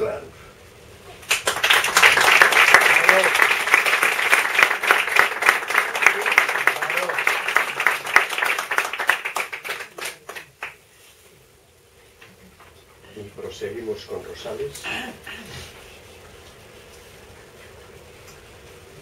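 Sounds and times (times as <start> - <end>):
audience applauding: 1.2 - 10.8.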